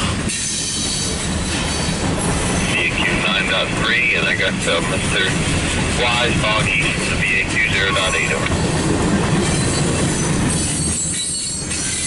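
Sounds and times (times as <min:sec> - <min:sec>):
train wheels rattling on rails: 0:00.0 - 0:12.0
faint high wheel squeal: 0:09.4 - 0:12.0.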